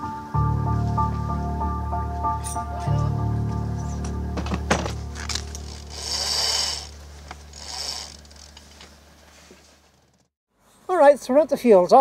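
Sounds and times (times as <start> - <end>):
background music: 0.0 - 8.1
winch ratcheting: 5.0 - 9.0.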